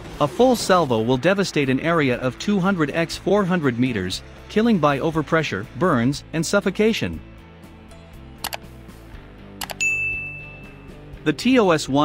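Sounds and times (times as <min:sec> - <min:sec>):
quiet background music: 0:00.2 - 0:12.0
mouse double click: 0:08.4 - 0:08.7, 0:09.6 - 0:09.8
notification ding: 0:09.6 - 0:11.0.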